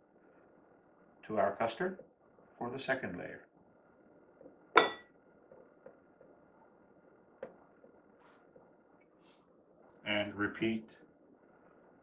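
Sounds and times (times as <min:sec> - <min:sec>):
utensil clinking against glass dish: 0:04.8 - 0:05.1.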